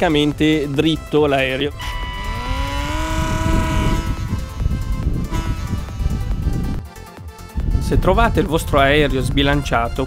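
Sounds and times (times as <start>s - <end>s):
rc plane motor whining: 1.8s - 6.3s
wind rumbling on microphone: 1.8s - 6.8s, 7.6s - 10.0s.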